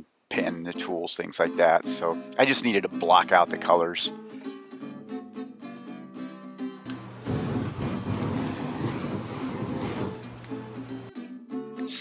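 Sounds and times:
flames rushing: 7.2 - 10.2.

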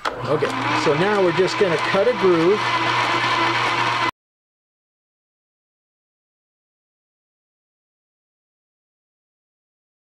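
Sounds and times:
metal lathe humming with whine: 0.0 - 4.1.

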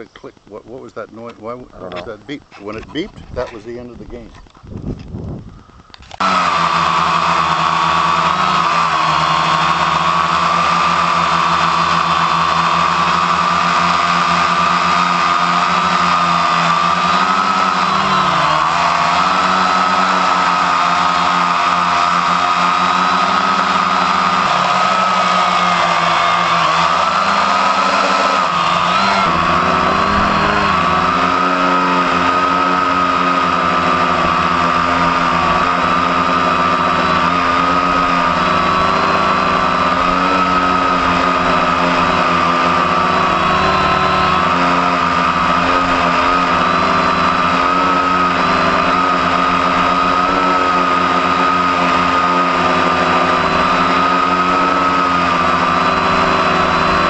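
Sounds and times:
quadcopter motors whining: 0.0 - 57.0.

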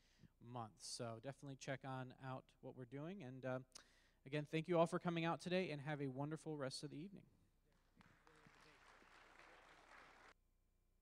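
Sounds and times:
faint audience applause: 7.7 - 10.4.

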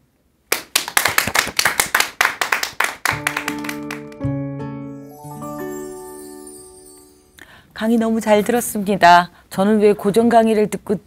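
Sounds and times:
audience clapping: 0.5 - 4.3
musical jingle of held chords: 3.2 - 7.5.

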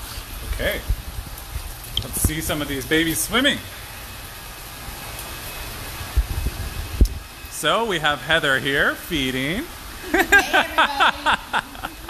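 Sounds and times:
equipment hiss: 0.0 - 12.0
running water: 0.0 - 12.0.

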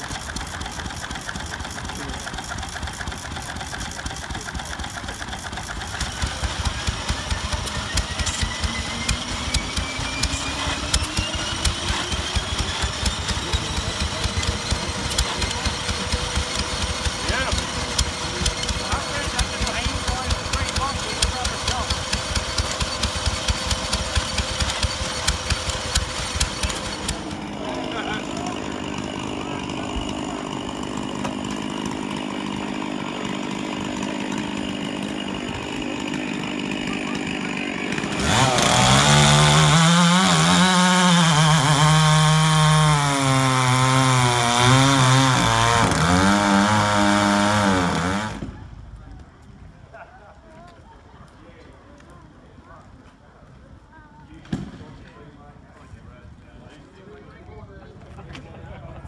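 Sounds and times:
small engine running: 0.0 - 48.8.

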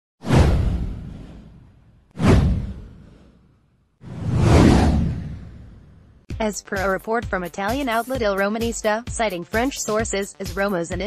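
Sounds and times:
whoosh with deep low boom: 0.2 - 6.3.

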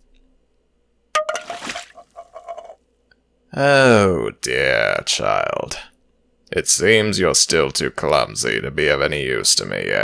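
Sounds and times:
water splashing: 1.2 - 2.7
cup clattering and rattling: 1.2 - 2.8.

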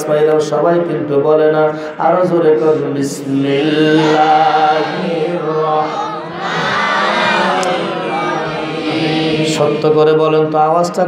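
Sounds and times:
man chanting into a microphone: 0.0 - 5.8, 9.3 - 11.0.

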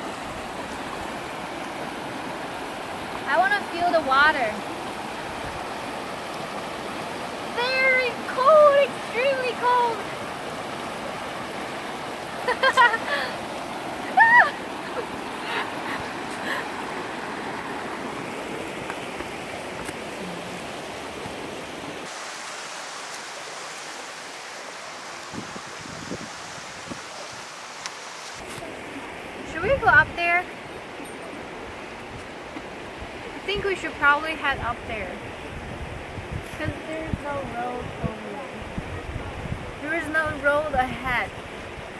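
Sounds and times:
river rushing over rocks: 0.0 - 41.9
woman's voice: 3.3 - 4.6, 7.5 - 10.0, 29.5 - 30.5, 33.4 - 35.2, 36.5 - 38.6, 39.8 - 41.3.

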